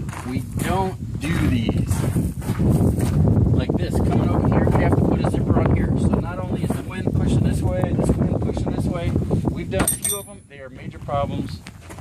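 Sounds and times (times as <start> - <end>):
wind buffeting microphone: 0.0 - 12.0
man's voice: 0.2 - 2.0, 3.6 - 11.6
sharp metallic clink: 9.8 - 10.6.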